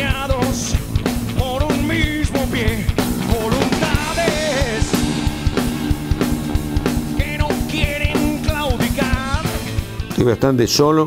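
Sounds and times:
man singing: 0:00.0 - 0:05.2, 0:07.0 - 0:09.6
rock band playing: 0:00.0 - 0:10.7.

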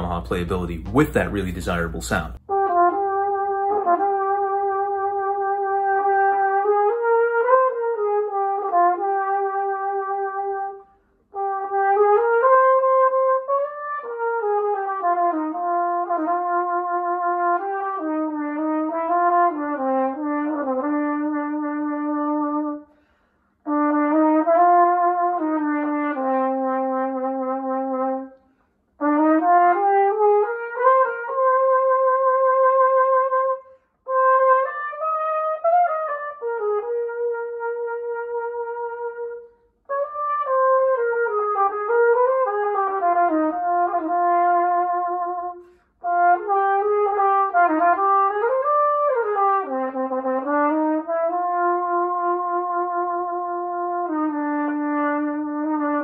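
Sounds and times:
solo flugelhorn melody: 0:00.0 - 0:56.0.

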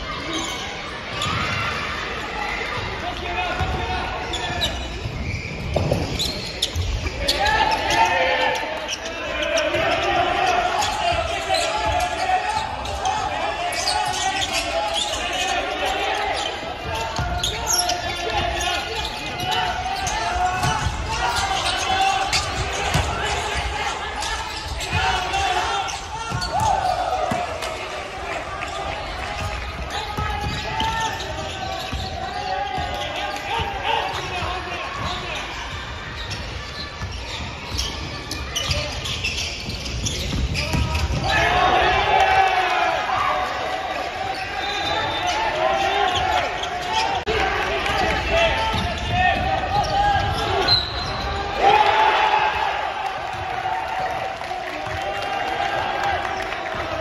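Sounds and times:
players calling out: 0:00.1 - 0:57.0
basketball bouncing on court: 0:16.8 - 0:25.4, 0:26.3 - 0:27.8, 0:29.3 - 0:35.2, 0:35.8 - 0:41.3.

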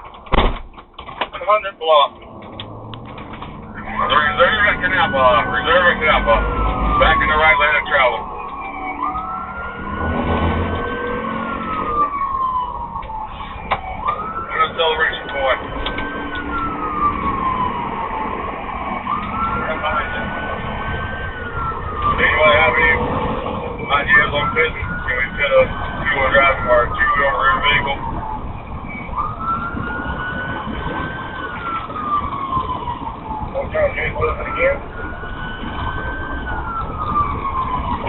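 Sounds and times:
police car siren wailing: 0:01.4 - 0:38.0
crackly radio chatter: 0:14.5 - 0:16.7, 0:23.8 - 0:28.0.

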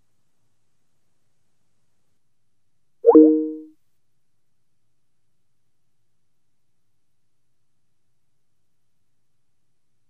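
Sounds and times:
short electronic chime: 0:03.1 - 0:03.6.

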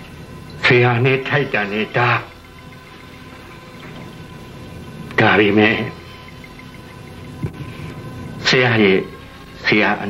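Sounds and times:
faint hum: 0:00.0 - 0:10.0
steady background hiss: 0:00.0 - 0:10.0.

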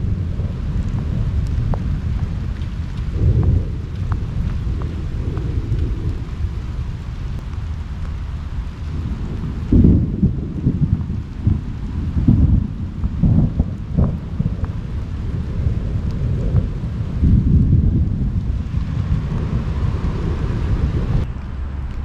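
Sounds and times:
thunder rumbling: 0:00.0 - 0:22.0.

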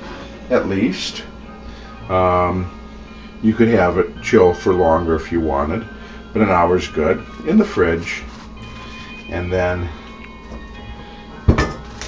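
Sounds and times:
quiet background music: 0:00.0 - 0:12.0
knock on kitchen counter: 0:11.5 - 0:11.9.

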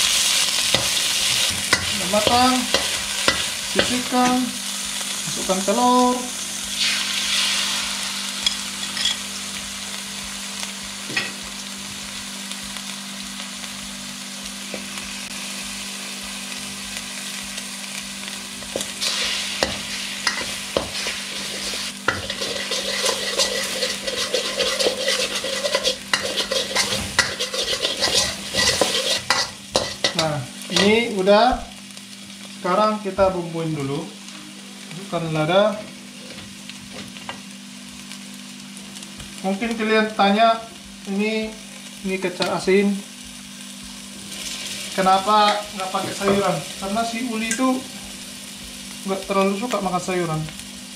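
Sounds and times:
egg sizzling in a wok: 0:00.0 - 0:33.2, 0:34.0 - 0:50.9
metal spatula scraping a wok: 0:18.8 - 0:30.9.

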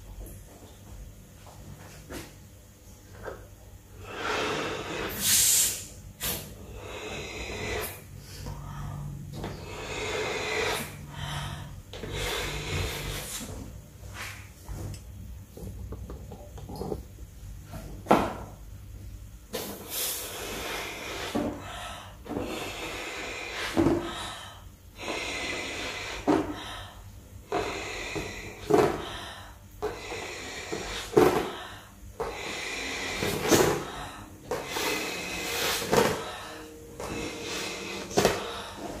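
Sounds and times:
breath blowing up balloon: 0:04.0 - 0:08.4, 0:09.6 - 0:13.6, 0:27.5 - 0:39.0.

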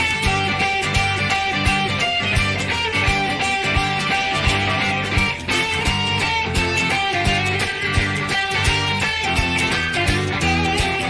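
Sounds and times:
bass guitar: 0:00.0 - 0:11.0
drum beat: 0:00.0 - 0:11.0
electric guitars: 0:00.0 - 0:11.0.

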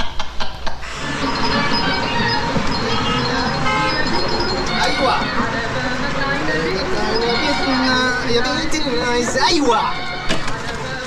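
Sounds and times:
short high-pitched tones: 0:00.8 - 0:05.6, 0:06.3 - 0:10.2
loud steady rushing noise: 0:00.8 - 0:11.0.

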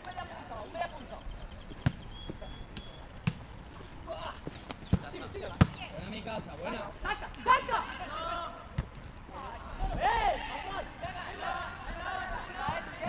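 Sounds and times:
football being kicked: 0:01.7 - 0:03.5, 0:04.4 - 0:05.9
players shouting in distance: 0:03.9 - 0:13.0.

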